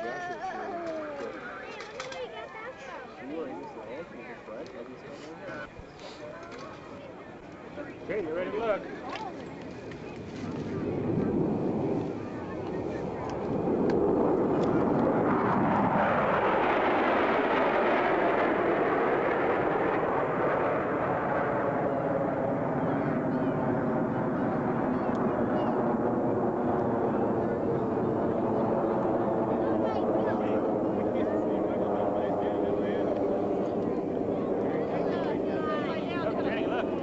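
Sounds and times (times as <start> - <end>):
jet flyover: 6.4 - 37.0.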